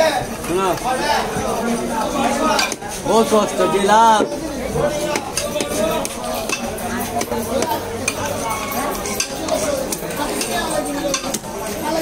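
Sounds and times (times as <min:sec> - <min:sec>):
busy clattering background: 0:00.0 - 0:12.0.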